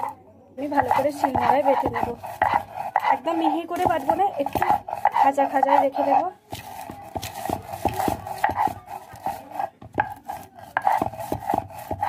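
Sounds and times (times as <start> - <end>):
stone pestle grinding on slab: 0.0 - 12.0.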